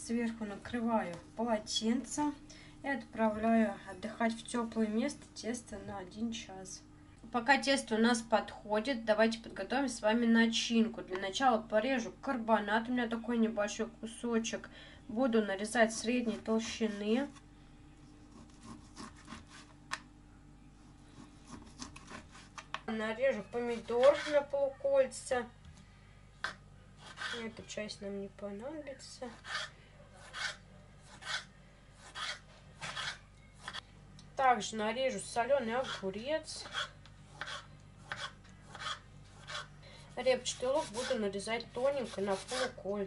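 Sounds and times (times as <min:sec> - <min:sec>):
knife slicing meat: 0:23.7 - 0:24.4, 0:29.3 - 0:33.8, 0:35.8 - 0:39.7.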